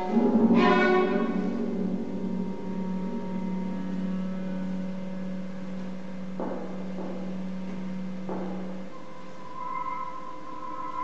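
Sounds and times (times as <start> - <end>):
loud plucked chord: 0.0 - 9.4
low held chamber music note: 0.0 - 11.0.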